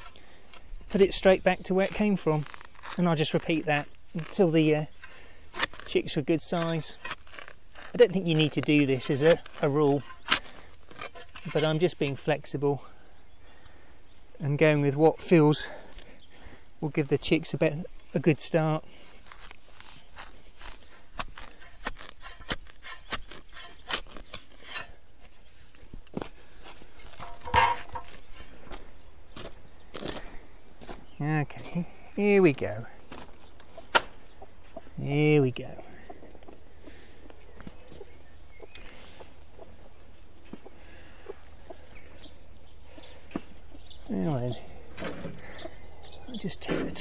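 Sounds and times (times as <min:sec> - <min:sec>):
spade cutting into turf: 0:19.3 - 0:25.4.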